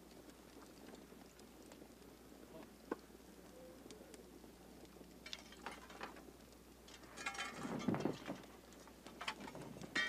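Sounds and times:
faint ticks: 0.0 - 5.4
faint steady hiss: 0.0 - 10.0.

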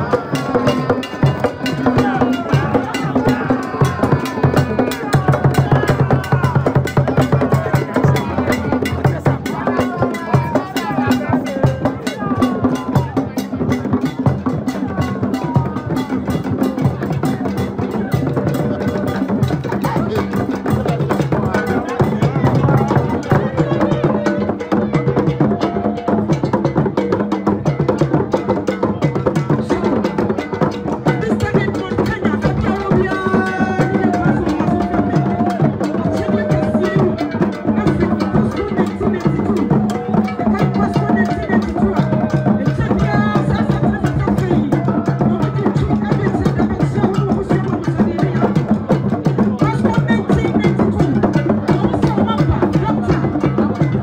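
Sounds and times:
drums beaten in fast rhythm: 0.0 - 54.0
voices: 0.0 - 54.0.

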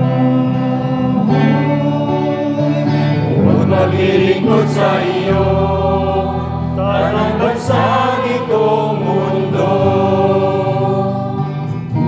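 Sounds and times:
psalm sung slowly: 0.0 - 12.0.

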